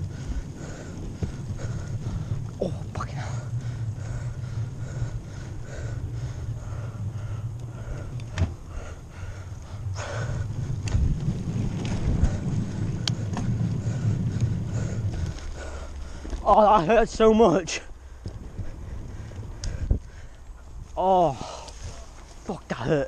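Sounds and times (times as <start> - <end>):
bicycle rumbling over rough trail: 0.0 - 23.0
wind buffeting camera: 0.0 - 23.0.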